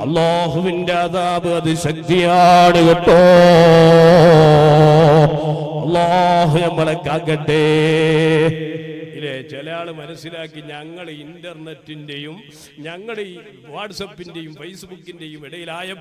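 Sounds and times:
man chanting melodic recitation: 0.0s - 16.0s.

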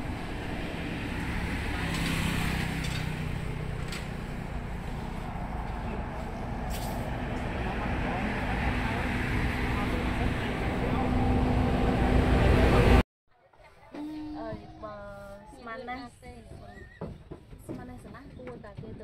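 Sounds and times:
vehicles passing on highway: 0.0s - 13.0s.

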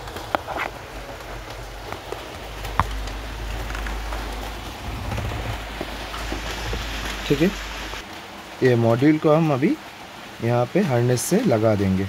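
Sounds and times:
steady hiss and low rumble: 0.0s - 12.0s.

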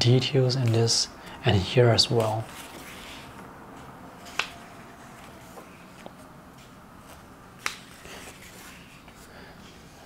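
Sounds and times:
book pages turning: 2.1s - 9.3s
paper flicks: 4.2s - 4.6s, 7.6s - 8.2s.

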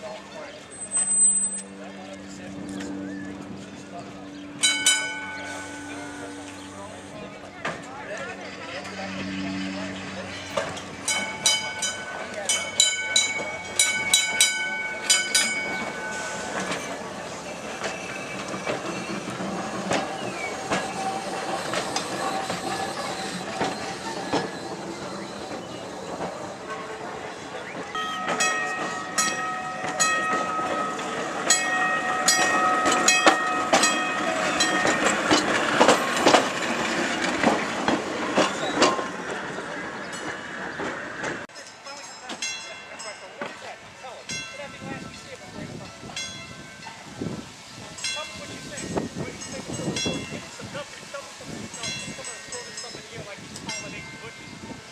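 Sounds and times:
electric trolley car running on rails: 0.0s - 54.9s.

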